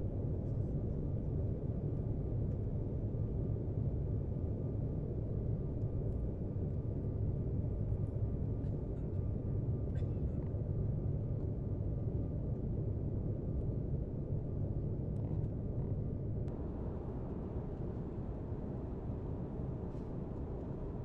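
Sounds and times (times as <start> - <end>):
faint steady whine: 0.0 - 21.0
airliner cabin rumble: 15.2 - 21.0.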